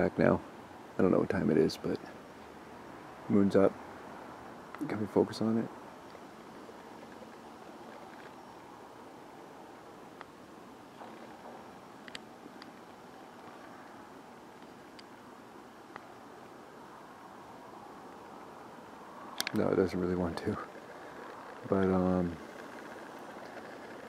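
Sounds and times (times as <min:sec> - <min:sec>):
low steady hiss: 0:00.0 - 0:24.0
camera handling clicks: 0:19.4 - 0:19.6.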